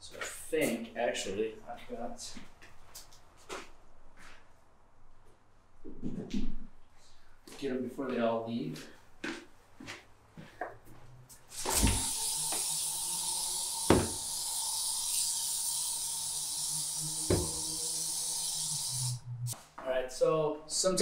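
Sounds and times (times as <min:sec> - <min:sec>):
aerosol spray hissing: 0:11.5 - 0:19.2.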